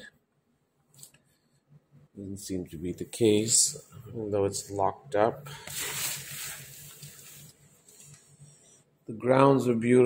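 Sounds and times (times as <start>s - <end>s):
faint low hum: 0.0s - 10.0s
fabric curtain rustling: 5.7s - 8.1s.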